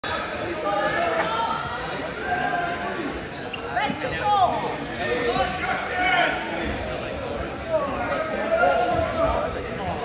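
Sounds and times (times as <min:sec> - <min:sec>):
spectators talking in echoing gym: 0:00.0 - 0:10.0.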